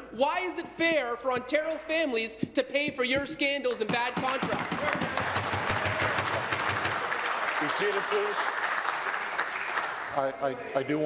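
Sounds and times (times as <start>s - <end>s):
group applause: 4.4s - 10.6s.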